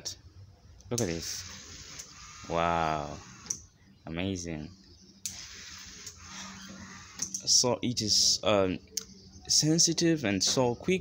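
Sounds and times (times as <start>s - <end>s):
small electric motors running: 1.0s - 3.6s, 5.3s - 7.5s.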